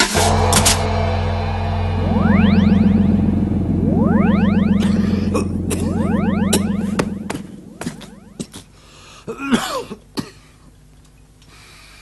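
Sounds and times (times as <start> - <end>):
low steady hum: 0.3 - 11.3
electronic rising sweeps: 1.8 - 8.8.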